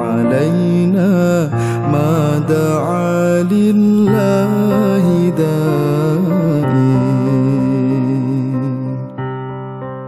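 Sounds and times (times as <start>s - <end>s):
man singing melismatic phrases: 0.0s - 9.0s
acoustic piano accompaniment: 0.0s - 10.0s.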